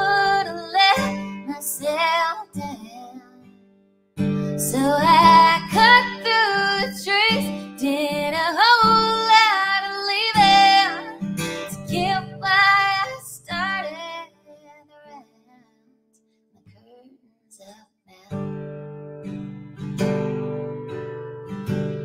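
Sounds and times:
acoustic guitar strumming: 0.0s - 2.0s, 4.2s - 14.0s, 18.3s - 22.0s
woman singing: 0.0s - 3.6s, 4.5s - 15.8s, 16.7s - 18.5s.

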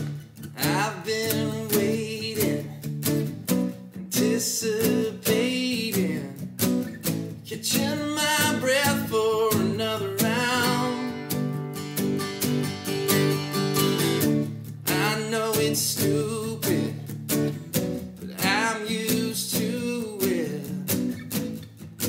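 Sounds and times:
man singing: 0.0s - 2.8s, 4.0s - 6.4s, 7.5s - 11.5s, 14.8s - 17.1s, 18.2s - 21.0s
acoustic guitars strummed and picked: 0.0s - 22.0s.

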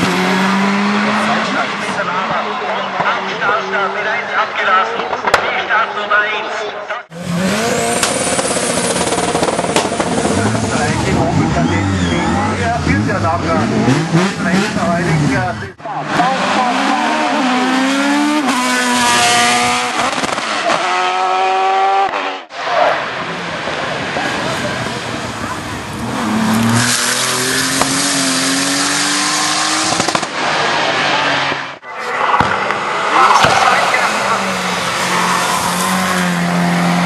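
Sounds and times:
race car engines at full throttle: 0.0s - 6.0s, 7.0s - 37.0s.

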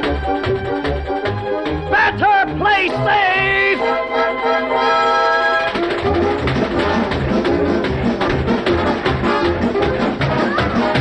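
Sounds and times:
orchestral brass music: 0.0s - 11.0s.

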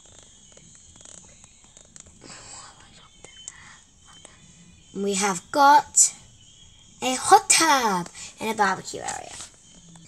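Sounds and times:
faint clicks and rustles: 0.0s - 2.2s
soft whisper: 2.2s - 5.1s, 8.0s - 9.5s.

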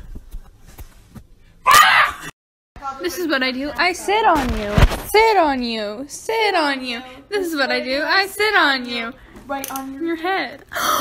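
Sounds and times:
woman screaming: 1.6s - 2.3s.

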